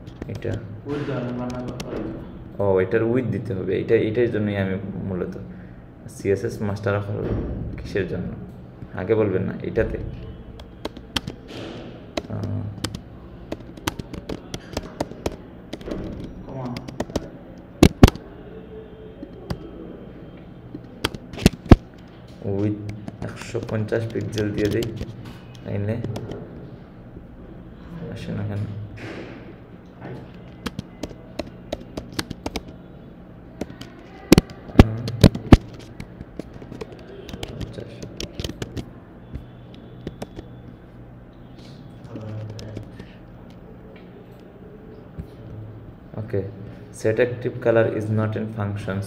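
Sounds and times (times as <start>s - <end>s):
loud keyboard clacks: 0.0s - 2.2s, 10.6s - 18.2s, 20.7s - 26.4s, 30.2s - 32.8s, 33.6s - 40.8s, 42.0s - 43.0s
keyboard keystroke clicks: 10.6s - 11.6s, 12.2s - 18.2s, 20.7s - 22.2s, 22.9s - 26.4s, 30.3s - 32.8s, 33.6s - 40.7s.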